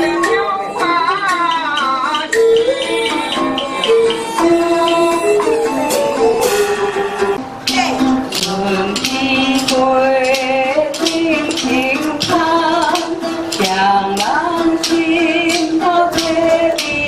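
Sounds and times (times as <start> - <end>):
plucked string instruments: 0.0 - 17.0
woman singing: 0.0 - 17.0.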